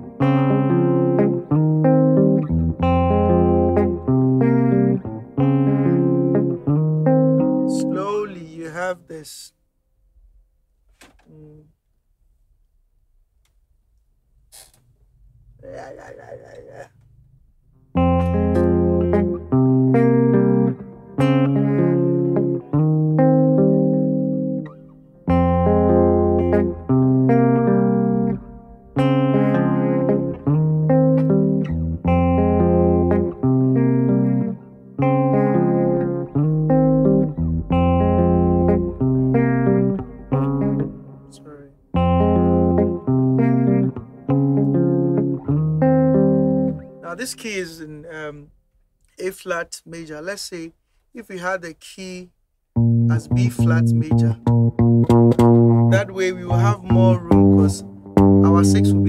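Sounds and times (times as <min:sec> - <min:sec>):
clean electric guitar chords: 0:00.0 - 0:08.6, 0:17.9 - 0:47.0, 0:52.8 - 0:59.0.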